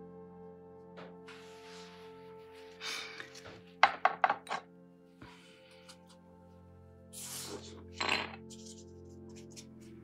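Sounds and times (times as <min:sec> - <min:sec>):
soft background music: 0:00.0 - 0:10.0
painting tools tapping on hard surface: 0:03.8 - 0:04.7.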